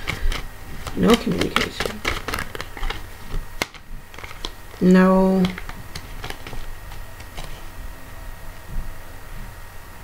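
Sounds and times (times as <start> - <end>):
cards clicking and flicking: 0.0 - 7.7.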